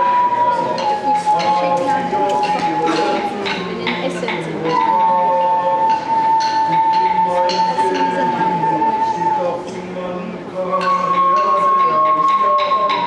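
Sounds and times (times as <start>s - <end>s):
high whistling tone: 0.0s - 13.0s
voices: 0.0s - 13.0s.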